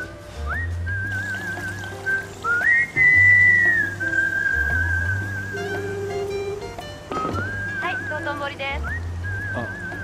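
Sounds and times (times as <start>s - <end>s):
light background music: 0.0s - 10.0s
whistled tune: 0.0s - 10.0s.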